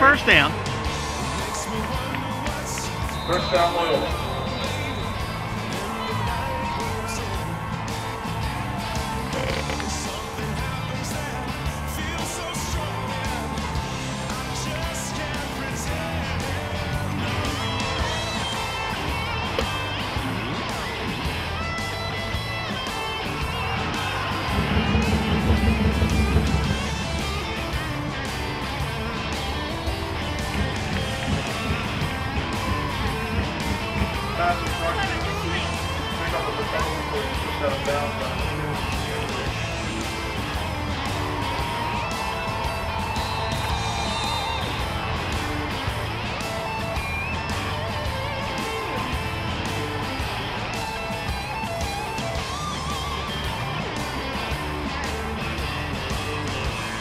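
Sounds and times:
background music with bass line: 0:00.0 - 0:57.0.

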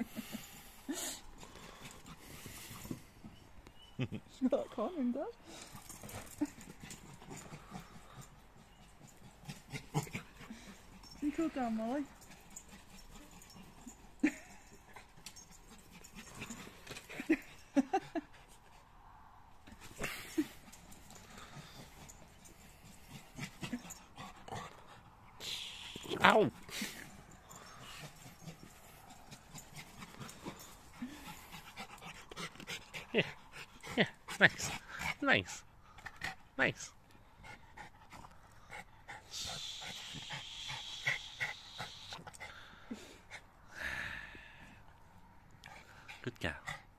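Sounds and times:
dog panting: 0:00.0 - 0:04.0, 0:04.6 - 0:43.6, 0:44.6 - 0:46.9.

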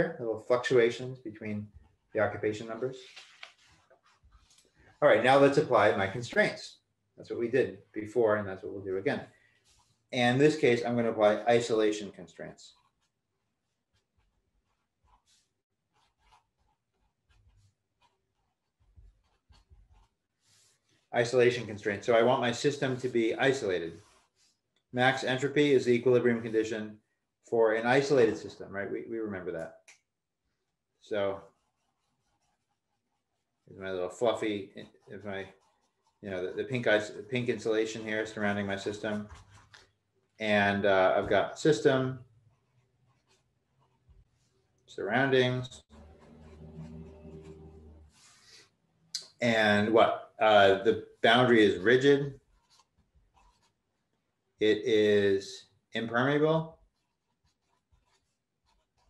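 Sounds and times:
marker scratching on paper: 0:03.5 - 0:06.0, 0:09.5 - 0:10.1, 0:12.7 - 0:25.4, 0:31.4 - 0:39.9, 0:42.4 - 0:44.6, 0:45.8 - 0:48.7, 0:51.3 - 0:54.2, 0:56.8 - 0:59.0.

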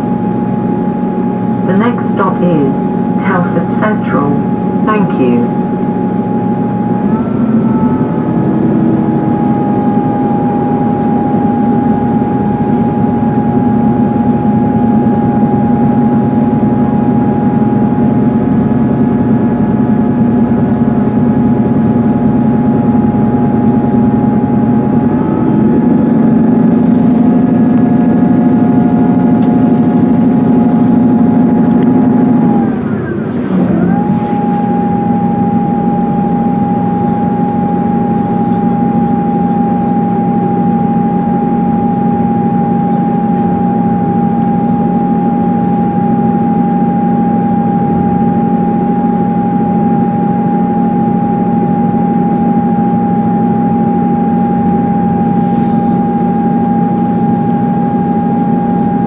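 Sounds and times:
train diesel engine whine and drone: 0:00.0 - 0:59.0.

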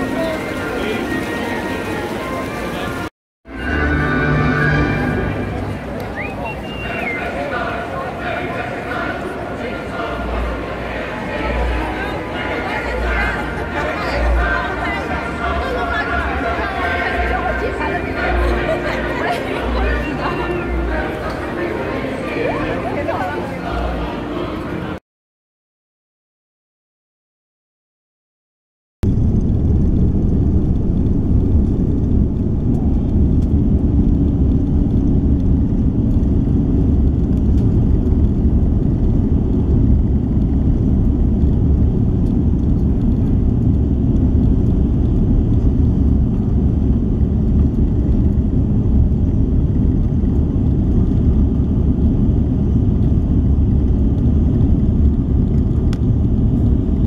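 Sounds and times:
jet cabin engine rumble: 0:29.0 - 0:57.0.

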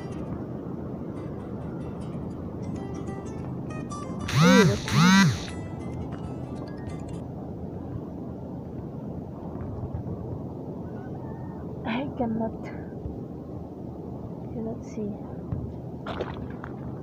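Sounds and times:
steady background noise: 0:00.0 - 0:16.1
person calling loudly: 0:04.3 - 0:05.5.

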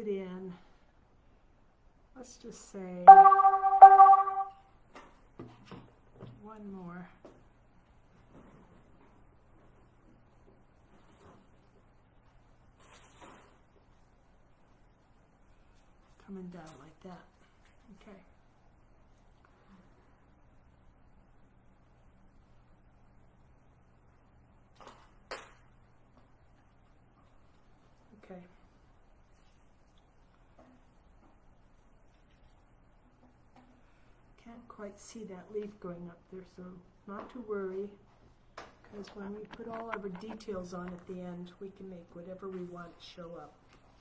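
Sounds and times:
bright chime: 0:03.1 - 0:04.5.

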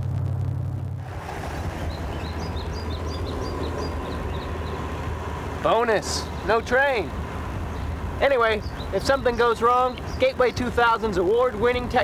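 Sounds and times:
faint steady whine: 0:00.0 - 0:04.8
car driving rumble: 0:00.0 - 0:12.0.

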